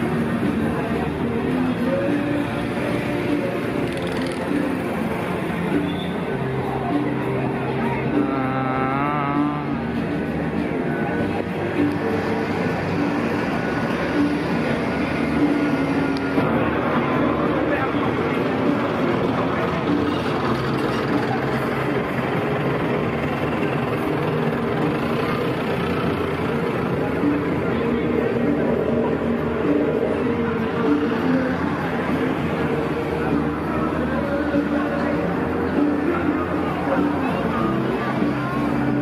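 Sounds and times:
cars and motorbikes passing: 0.0s - 39.0s
many people talking: 0.0s - 39.0s
music playing from a bar: 0.0s - 39.0s.

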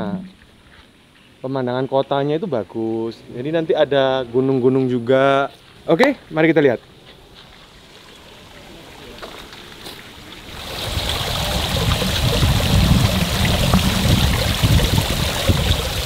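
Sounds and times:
waterfall splashing into pond: 8.3s - 16.0s.

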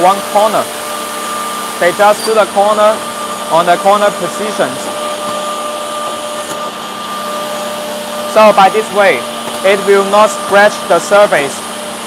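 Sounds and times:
machine whirring with high whine: 0.0s - 12.0s.

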